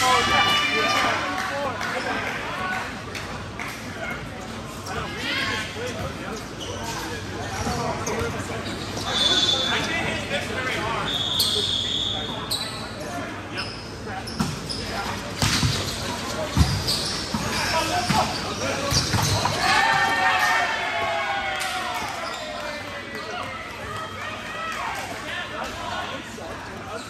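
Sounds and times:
sneakers squeaking on court: 5.9 - 10.0, 13.6 - 19.6.

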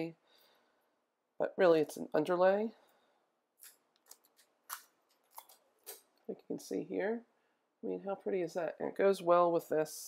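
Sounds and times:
faint crisp foil crackles: 3.6 - 6.1.

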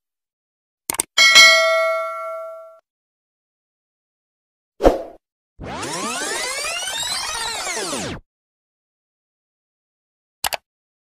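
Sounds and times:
notification bell ding: 1.2 - 2.8.

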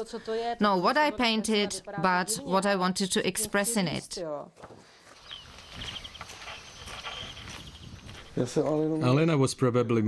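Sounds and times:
short high-pitched chirps: 5.2 - 8.2.

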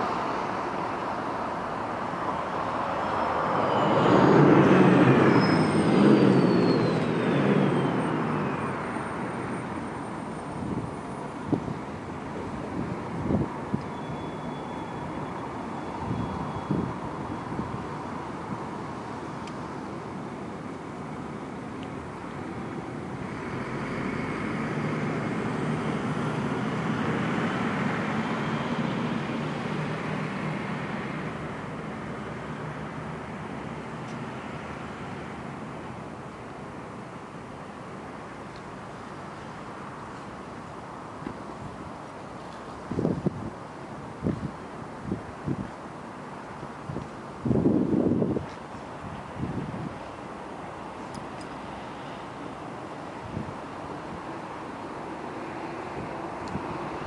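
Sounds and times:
vehicle passing by: 0.0 - 10.8, 23.1 - 36.0
faint high whine: 0.0 - 11.4.

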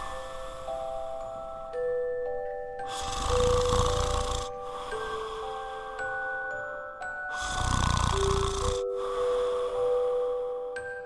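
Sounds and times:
soft background music: 0.0 - 11.0
man snoring: 2.8 - 6.3, 7.3 - 10.6.

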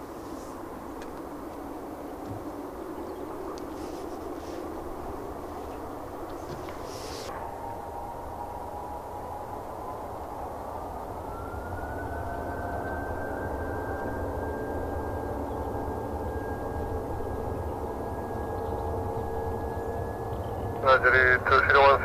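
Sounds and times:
jet engines spooling up: 0.0 - 22.0.

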